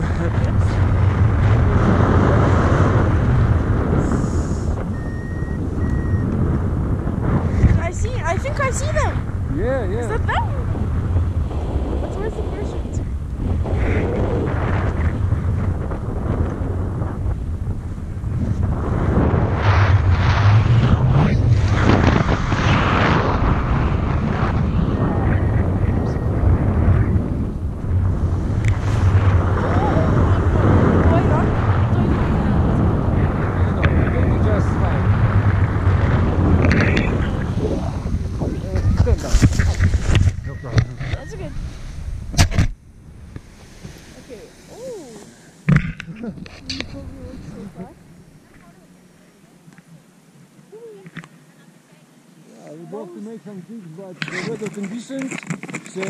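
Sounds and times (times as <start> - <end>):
wind buffeting microphone: 0.0 - 49.2
sharp knocks and rustles: 54.2 - 56.0.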